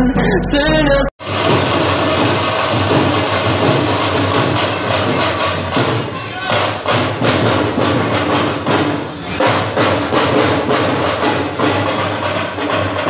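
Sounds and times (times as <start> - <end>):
pop song with singing: 0.0 - 1.2
crowd voices chattering: 4.6 - 6.9.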